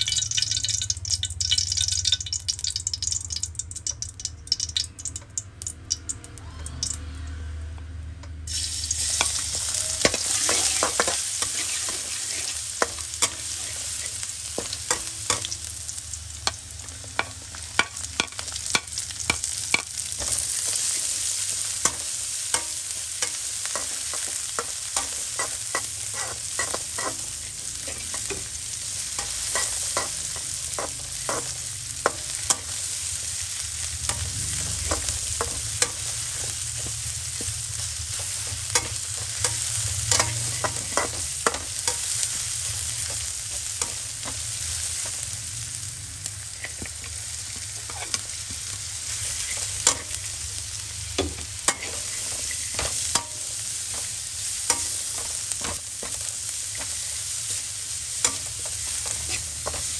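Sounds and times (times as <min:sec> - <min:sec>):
garlic sizzling in hot oil: 0:00.0 - 0:07.0, 0:08.5 - 0:59.9
metal spatula scraping wok: 0:08.6 - 0:15.5, 0:17.2 - 0:45.2, 0:47.8 - 0:48.4, 0:49.1 - 0:50.2, 0:51.7 - 0:54.1, 0:58.2 - 0:59.9.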